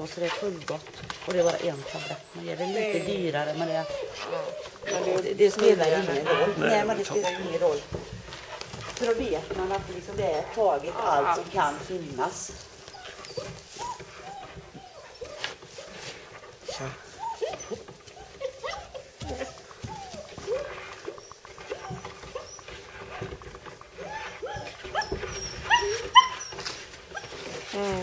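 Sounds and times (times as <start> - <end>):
puppy whining and whimpering: 0.2 - 8.0, 9.8 - 28.0.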